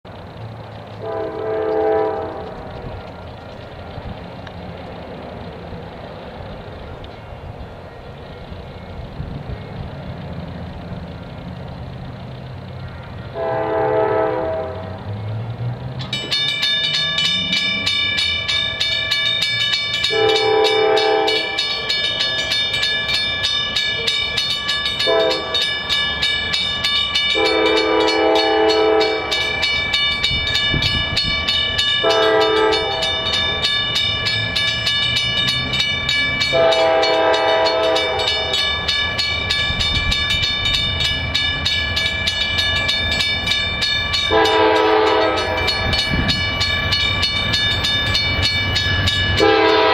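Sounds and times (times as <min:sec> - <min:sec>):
locomotive air horn: 0:01.0 - 0:02.9, 0:13.3 - 0:15.0, 0:20.1 - 0:21.6, 0:25.0 - 0:25.6, 0:27.3 - 0:29.5, 0:32.0 - 0:33.2, 0:36.5 - 0:38.6, 0:44.3 - 0:45.8, 0:49.4 - 0:49.9
crossing signal bell ringing: 0:16.0 - 0:49.9.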